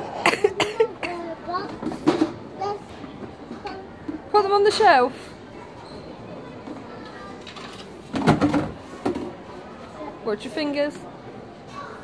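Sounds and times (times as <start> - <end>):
plastic food boxes clattering: 7.5 - 9.3.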